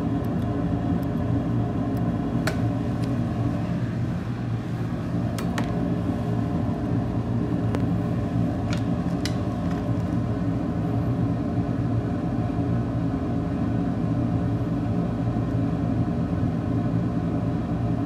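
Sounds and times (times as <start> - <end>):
low machine hum: 0.0 - 18.0.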